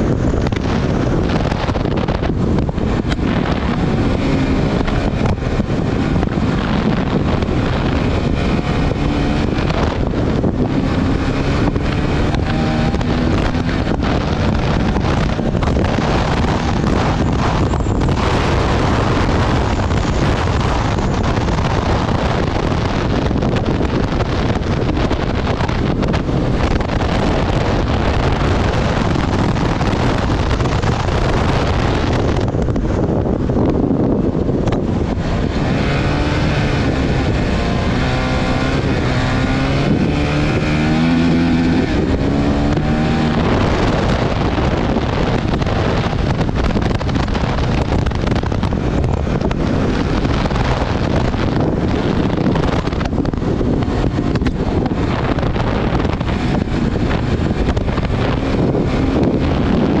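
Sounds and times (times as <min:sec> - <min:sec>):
motorcycle engine running hard: 0:00.0 - 1:00.0
wind noise on microphone: 0:00.0 - 1:00.0.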